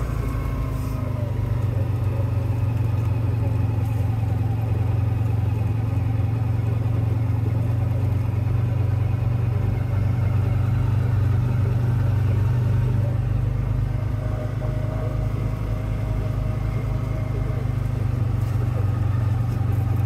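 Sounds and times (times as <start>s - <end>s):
utility vehicle engine droning: 0.0s - 20.0s.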